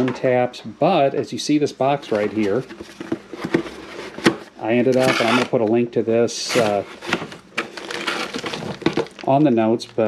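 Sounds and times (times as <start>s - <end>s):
cardboard box rustling: 6.5s - 9.3s
plastic wrapping crinkling: 6.5s - 10.0s.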